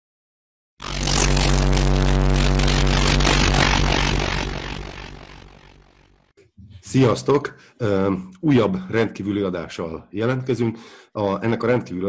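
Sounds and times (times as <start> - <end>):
deep steady drone: 0.8 - 6.1.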